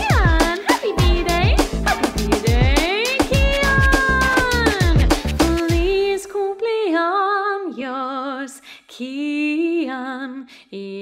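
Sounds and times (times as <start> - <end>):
upbeat birthday song: 0.0 - 6.8.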